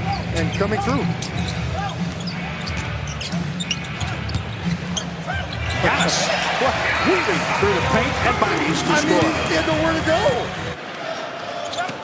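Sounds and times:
music playing: 0:00.3 - 0:10.8
crowd hum: 0:01.1 - 0:11.6.

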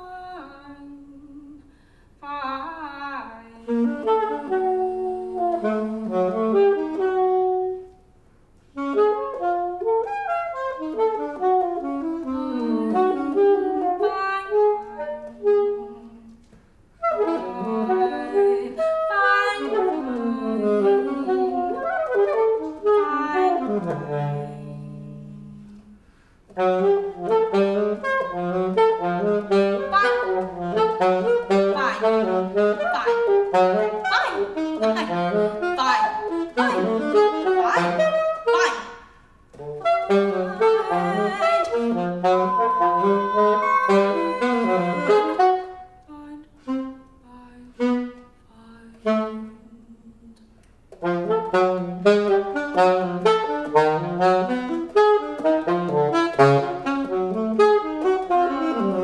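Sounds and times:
saxophone improvising: 0:03.7 - 0:08.0, 0:08.8 - 0:48.4, 0:50.9 - 0:59.0.

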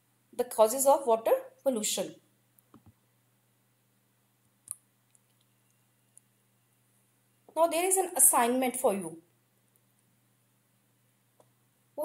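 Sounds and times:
faint low hum: 0:01.4 - 0:12.0.

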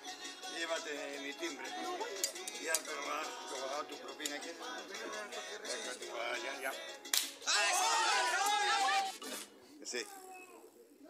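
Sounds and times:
sharp slap: 0:07.1 - 0:07.4.

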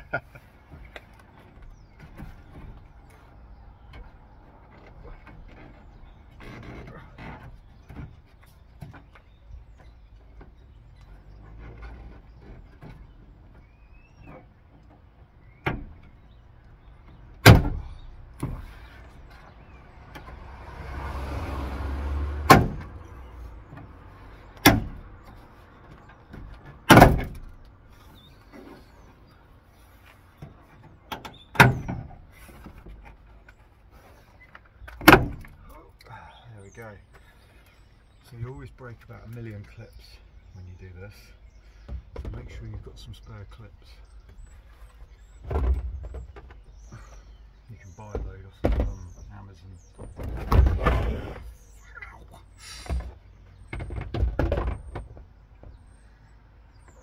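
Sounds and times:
plastic panel rustling and creaking: 0:00.6 - 0:20.4, 0:41.6 - 0:47.2, 0:47.8 - 0:51.7, 0:52.9 - 0:56.0.

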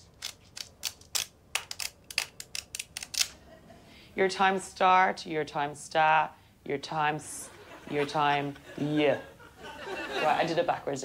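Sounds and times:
flick book pages flicking: 0:00.0 - 0:03.4.

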